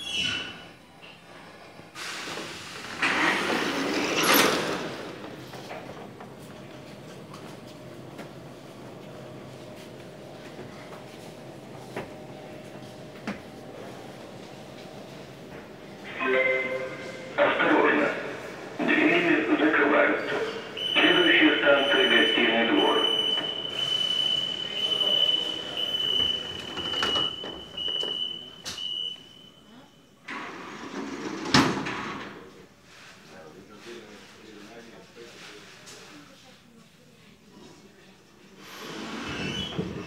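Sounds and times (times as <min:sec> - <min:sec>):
platform doors sliding shut: 0:02.0 - 0:16.0, 0:30.2 - 0:32.6, 0:38.6 - 0:40.0
voices on a platform: 0:05.1 - 0:30.1
high-pitched warning tone: 0:20.8 - 0:29.8.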